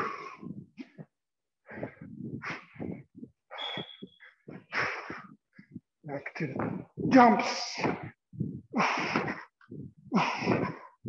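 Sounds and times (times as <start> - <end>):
person breathing hard: 0.0 - 5.9, 7.8 - 11.0.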